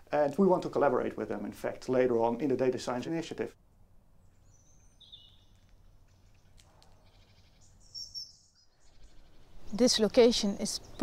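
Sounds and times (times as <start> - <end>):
small birds chirping: 4.2 - 11.0.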